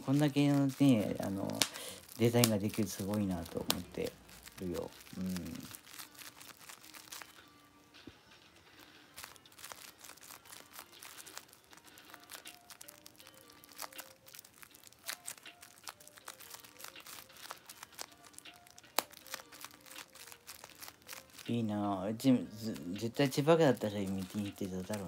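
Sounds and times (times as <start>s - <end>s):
bubble wrap popping and crinkling: 0.0s - 25.0s
faint background music: 0.0s - 25.0s.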